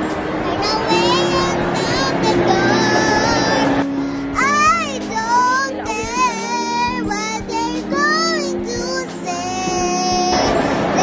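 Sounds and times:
held chords: 0.0s - 11.0s
high singing voice: 0.0s - 11.0s.

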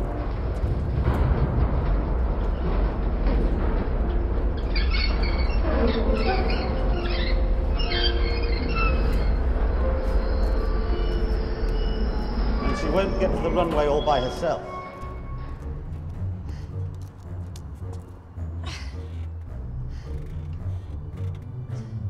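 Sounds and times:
sliding door rumbling on track: 0.0s - 15.9s
rollers squeaking: 0.0s - 16.4s.

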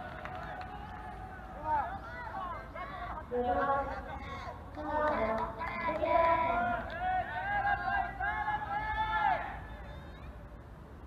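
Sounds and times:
young players shouting calls: 0.6s - 10.5s.

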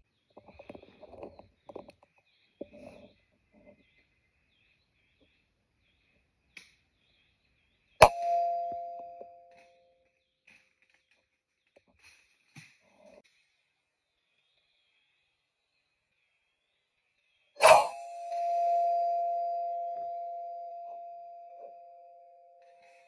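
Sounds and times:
metallic ring: 8.0s - 9.8s, 17.6s - 23.0s.

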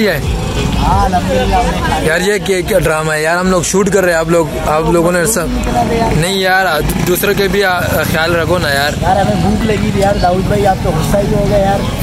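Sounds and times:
street traffic rumble: 0.0s - 12.0s
voices talking: 0.0s - 12.0s.

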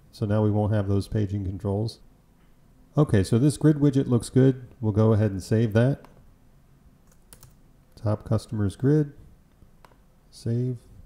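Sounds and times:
low hiss: 0.0s - 11.0s
keyboard typing: 7.0s - 7.6s.

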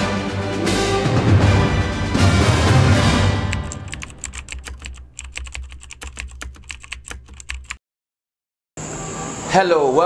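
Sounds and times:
music: 0.0s - 4.2s
computer keyboard typing clicks: 3.5s - 7.8s.

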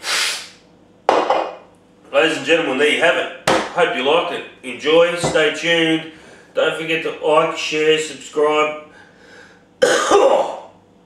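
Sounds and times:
breathy exhale: 0.0s - 0.6s, 8.9s - 9.6s
can knocking on wooden table: 1.1s - 1.5s.

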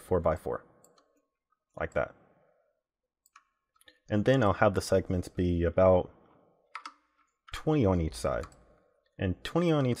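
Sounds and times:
computer mouse clicks: 3.2s - 3.9s, 6.7s - 7.0s.

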